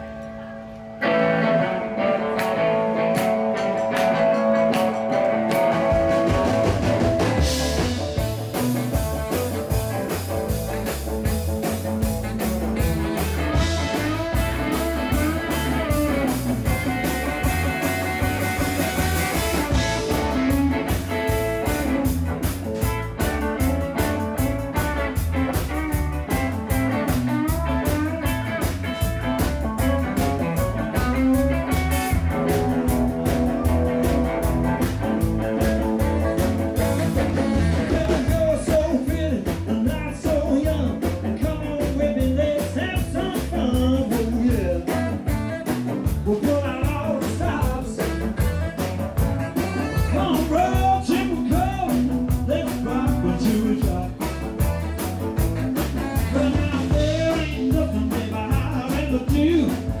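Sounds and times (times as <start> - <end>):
bass guitar: 0.0 - 60.0
electric guitar leading: 0.0 - 60.0
drum kit steady beat: 2.4 - 60.0.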